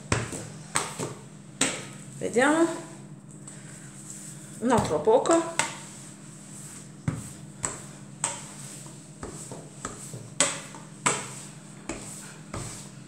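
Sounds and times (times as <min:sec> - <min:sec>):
rolling pin rolling dough: 0:00.0 - 0:02.9, 0:04.0 - 0:13.0
faint steady hum: 0:00.0 - 0:13.0.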